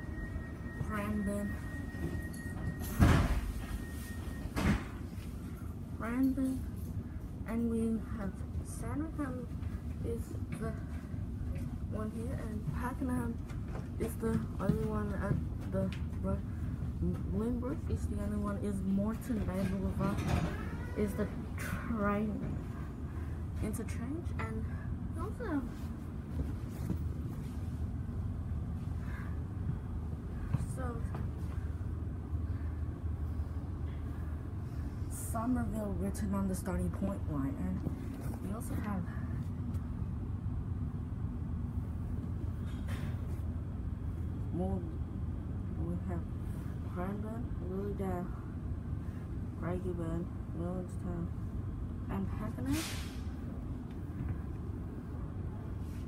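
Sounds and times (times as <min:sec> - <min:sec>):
train carriage rumble: 0:00.0 - 0:56.0.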